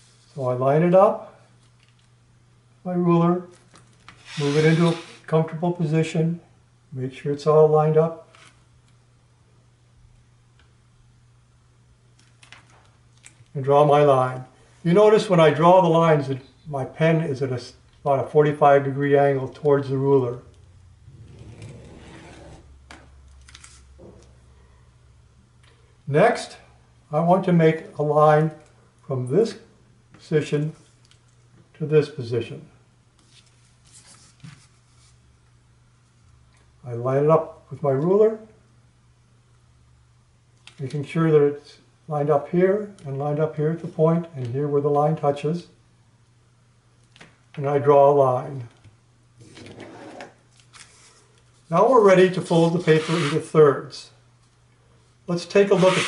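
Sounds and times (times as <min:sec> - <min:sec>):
paper sliding rustle: 0:04.2 - 0:05.3, 0:33.2 - 0:35.2, 0:49.4 - 0:51.8, 0:52.4 - 0:53.6.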